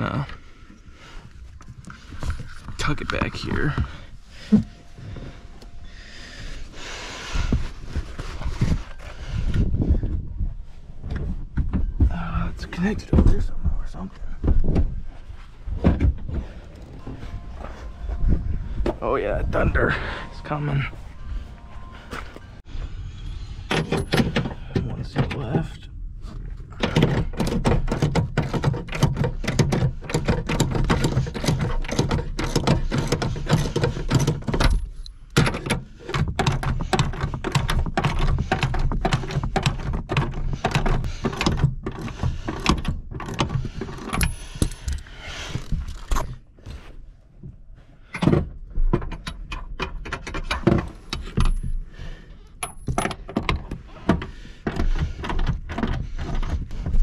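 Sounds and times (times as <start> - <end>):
rustling and knocking: 7.2 - 19.0, 26.4 - 47.6, 52.6 - 57.0.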